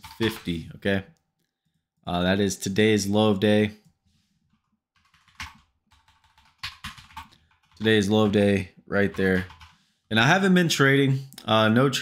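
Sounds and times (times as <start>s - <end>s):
computer keyboard keystrokes: 5.0s - 7.9s.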